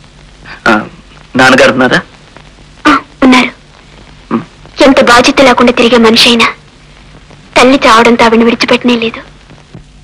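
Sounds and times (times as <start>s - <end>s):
faint steady soundtrack hum: 0.0s - 10.0s.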